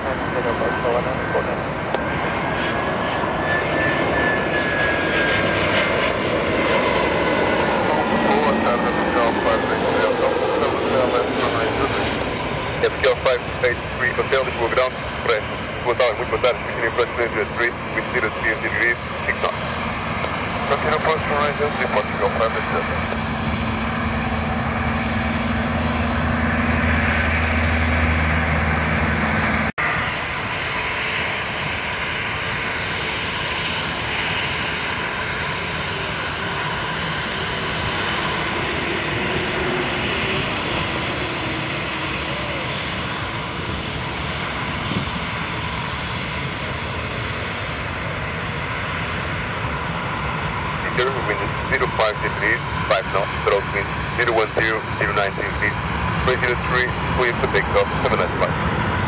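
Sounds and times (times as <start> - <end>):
radio voices: 0.0 - 2.0, 7.9 - 23.7, 50.7 - 58.7
jet engine low rumble: 0.0 - 59.0
jet engines whining while taxiing: 0.0 - 59.0.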